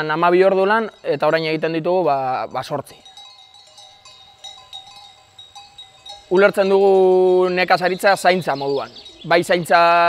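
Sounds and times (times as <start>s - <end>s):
sheep bells clinking: 0.0s - 10.0s.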